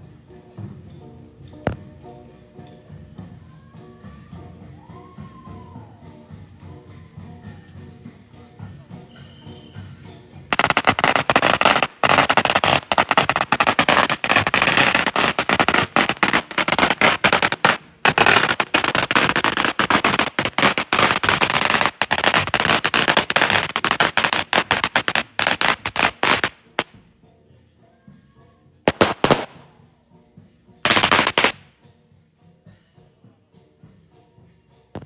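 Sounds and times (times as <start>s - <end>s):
firecrackers cracking: 10.5s - 27.0s, 28.9s - 29.7s, 30.8s - 31.7s.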